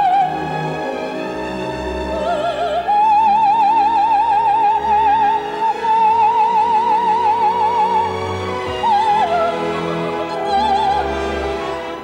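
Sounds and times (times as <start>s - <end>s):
orchestral accompaniment: 0.0s - 12.0s.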